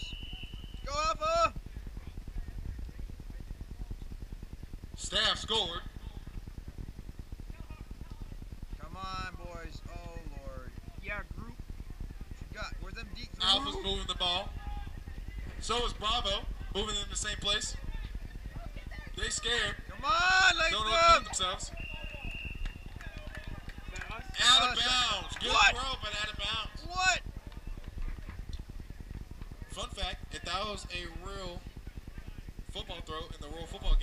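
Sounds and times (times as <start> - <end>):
wind rumbling on microphone: 5.8 - 34.0.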